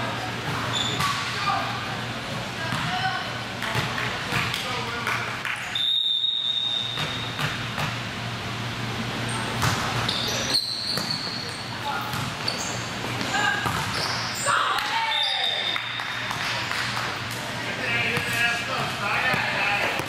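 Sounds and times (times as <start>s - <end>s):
volleyball hits: 0.5s - 1.5s, 6.9s - 8.1s, 9.5s - 10.1s, 13.2s - 17.1s
sneaker squeaks: 0.5s - 1.7s, 5.7s - 7.6s, 9.2s - 16.2s
referee whistle: 5.8s - 7.0s.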